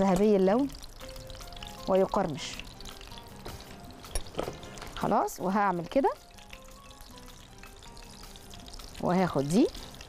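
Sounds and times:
soft background music: 0:00.0 - 0:10.0
spring rolls sizzling in oil: 0:00.0 - 0:10.0.

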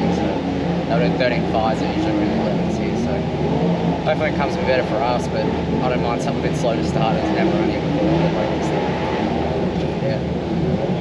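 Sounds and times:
race car engines rumbling: 0:00.0 - 0:11.0.

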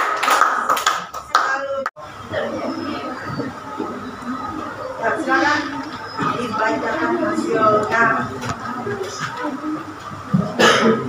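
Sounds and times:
students clapping: 0:00.0 - 0:01.9
classroom voices: 0:00.0 - 0:11.0.

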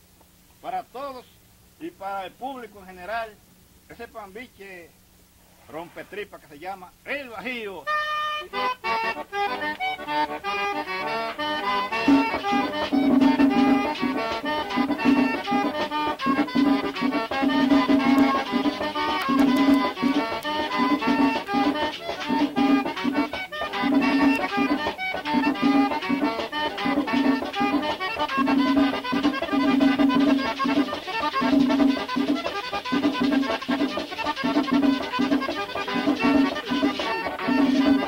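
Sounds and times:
button accordion melody: 0:07.9 - 0:38.0
driving percussion beat: 0:10.9 - 0:38.0.

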